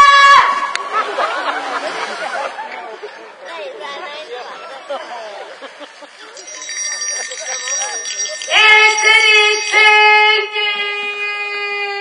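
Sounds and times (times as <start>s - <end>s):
voices chattering: 1.0s - 11.2s
shrill cry: 8.4s - 12.0s.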